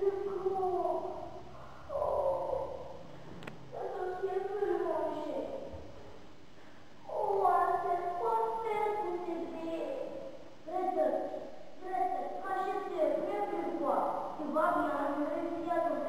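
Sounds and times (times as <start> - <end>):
high wordless wavering calls: 1.0 - 3.1.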